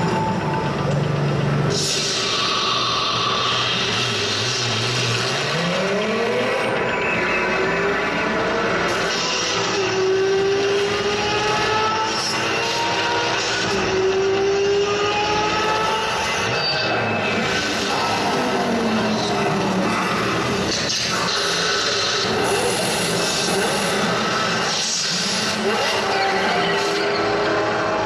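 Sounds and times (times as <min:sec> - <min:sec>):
racing car engine accelerating: 0:00.0 - 0:28.0.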